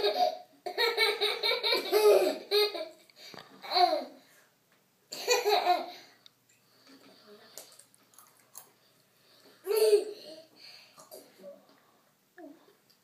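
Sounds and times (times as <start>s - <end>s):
toddler laughing: 0.0s - 3.0s, 9.6s - 10.5s.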